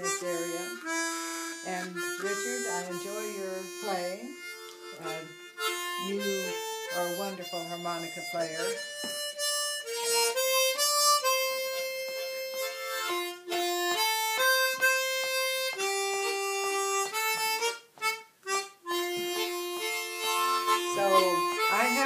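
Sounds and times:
harmonica melody: 0.0s - 22.0s.

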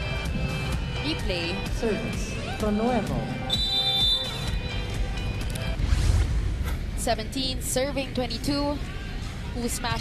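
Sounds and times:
music playing: 0.0s - 10.0s
crowd noise: 6.7s - 10.0s.

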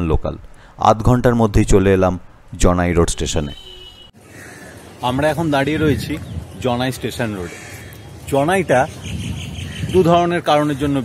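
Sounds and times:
man talking: 0.0s - 3.6s, 5.0s - 7.6s, 8.2s - 9.0s, 9.8s - 11.0s.

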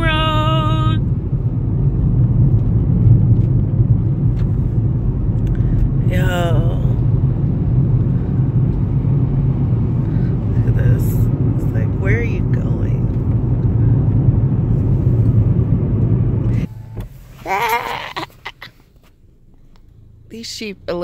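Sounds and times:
car interior road rumble: 0.0s - 21.0s.

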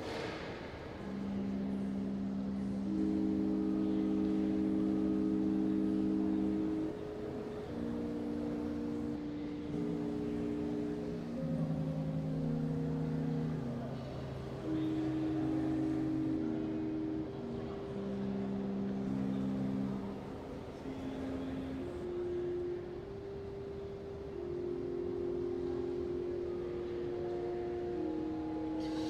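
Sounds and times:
pipe organ sustained chords: 0.0s - 29.0s.

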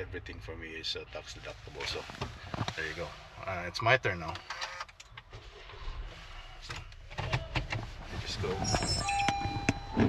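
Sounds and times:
low hum inside car cabin: 0.0s - 10.0s.

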